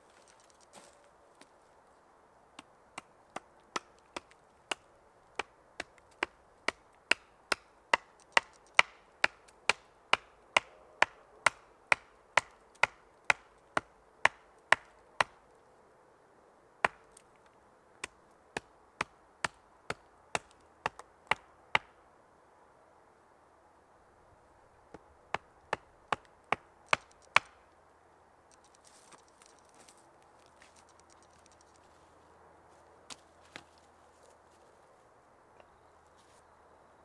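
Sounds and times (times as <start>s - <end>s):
hatchet chopping wood: 2.6s - 15.4s, 16.8s - 17.2s, 18.0s - 21.9s, 24.9s - 27.6s.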